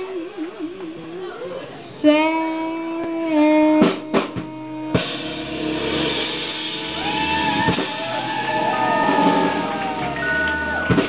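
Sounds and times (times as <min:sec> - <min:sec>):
jazz band playing: 0:00.0 - 0:11.0
held note stepping down in pitch: 0:02.0 - 0:11.0
drum hits: 0:03.8 - 0:11.0.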